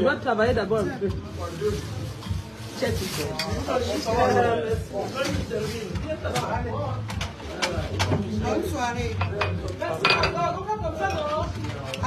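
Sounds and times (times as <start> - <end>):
dishes and cutlery clinking: 2.2 - 4.4, 5.1 - 12.0.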